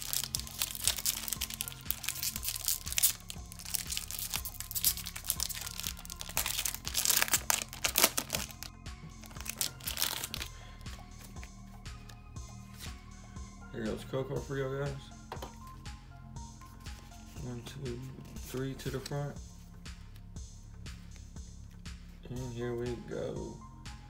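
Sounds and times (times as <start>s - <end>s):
foil wrapper crinkling and tearing: 0.0s - 10.5s
background music: 0.0s - 24.0s.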